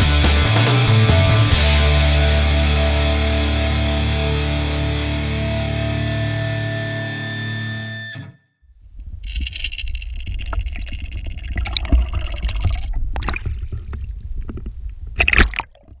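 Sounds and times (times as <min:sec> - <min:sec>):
water churning and gurgling: 0:09.0 - 0:16.0
sharp water splash: 0:15.2 - 0:16.0.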